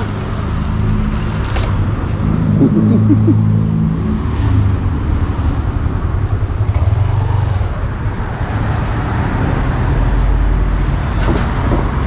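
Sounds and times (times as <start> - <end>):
road traffic: 0.0 - 12.0.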